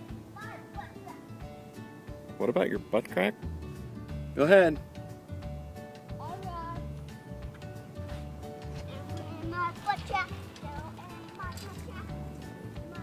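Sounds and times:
background music with held tones: 0.0s - 13.0s.

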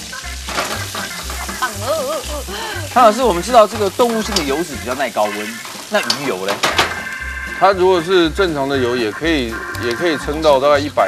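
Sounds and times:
background music with steady beat: 0.0s - 11.0s
ginger and garlic sizzling in wok: 0.0s - 11.0s.

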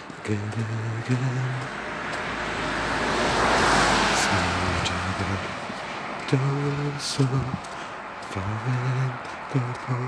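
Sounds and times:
car driving past: 0.1s - 8.4s.

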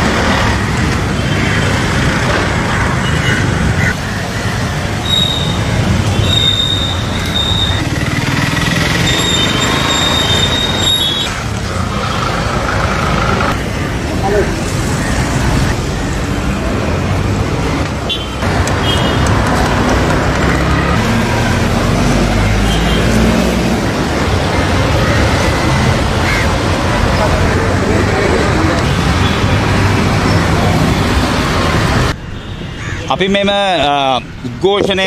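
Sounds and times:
street traffic: 0.0s - 35.0s
high squeal: 9.0s - 11.3s.

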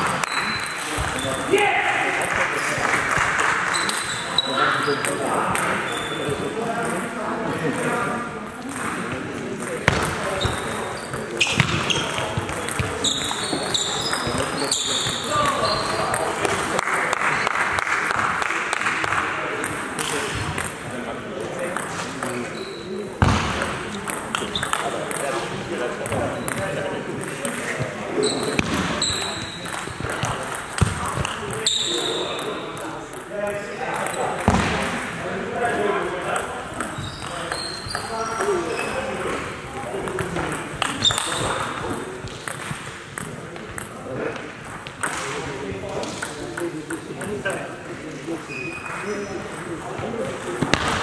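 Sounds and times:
murmur of voices: 0.0s - 51.0s
ball bouncing: 8.6s - 16.6s, 23.2s - 25.4s, 26.0s - 32.1s, 33.9s - 35.1s, 36.2s - 45.4s, 49.5s - 51.0s.

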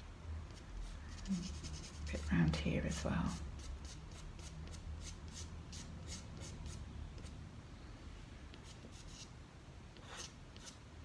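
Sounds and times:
pastel stick scratching on paper: 0.5s - 7.4s, 8.5s - 9.3s, 9.9s - 10.8s.

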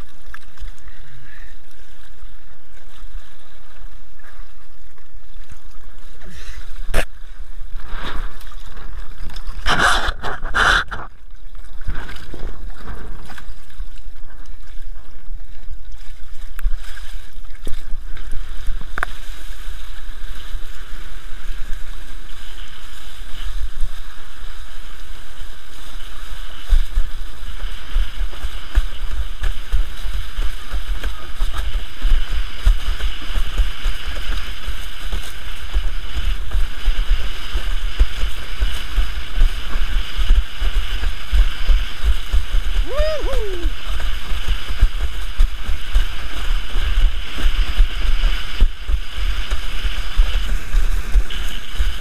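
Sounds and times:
water rushing along board: 0.0s - 52.0s.

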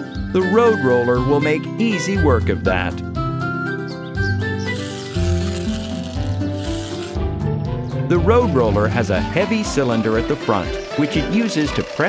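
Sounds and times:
cartoon background music: 0.0s - 12.0s
gritty rubbing sound: 4.6s - 7.2s.

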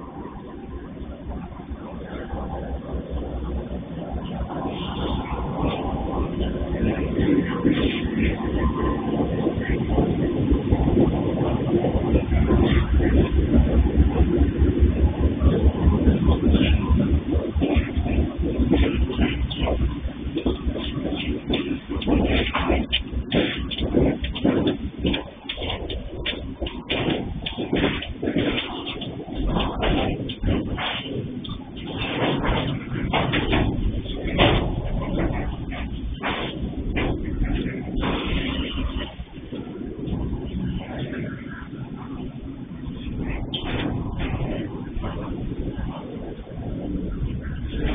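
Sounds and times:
diesel locomotive engines throbbing: 0.0s - 47.9s
wagons knocking and clanking: 0.0s - 47.9s.

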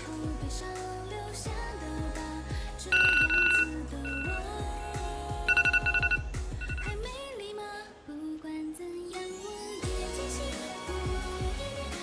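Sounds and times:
background music: 0.0s - 12.0s
telephone ringing: 2.9s - 7.1s.

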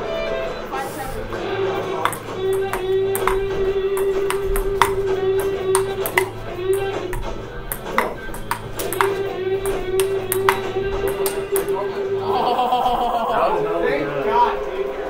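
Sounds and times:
background music: 0.0s - 15.0s
ping-pong ball clicks: 2.0s - 11.9s.

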